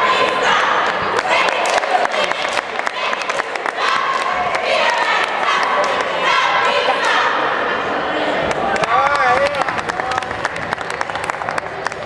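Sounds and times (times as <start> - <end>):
cheerleaders shouting a cheer: 0.0 - 8.5.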